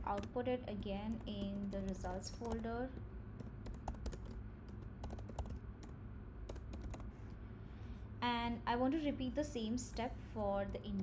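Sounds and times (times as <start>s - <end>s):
computer keyboard typing: 0.0s - 7.1s, 10.6s - 11.0s
steady low background hum: 0.0s - 11.0s.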